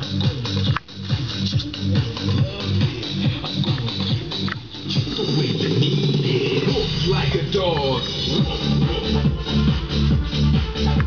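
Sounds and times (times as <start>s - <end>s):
music through loudspeakers: 0.0s - 11.0s.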